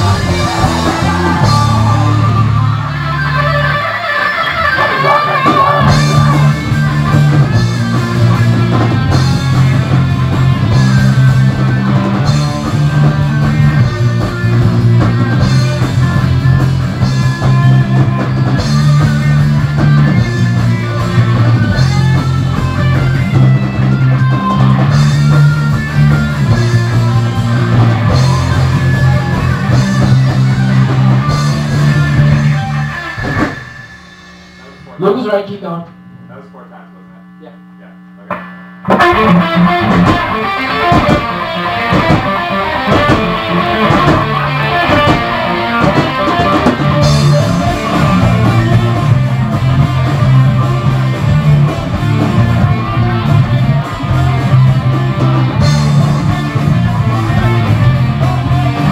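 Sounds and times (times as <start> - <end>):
drum kit: 0.0 - 35.8, 38.2 - 58.9
bass guitar riff: 0.0 - 58.9
electric guitars: 0.0 - 58.9
steady hum: 32.0 - 39.0.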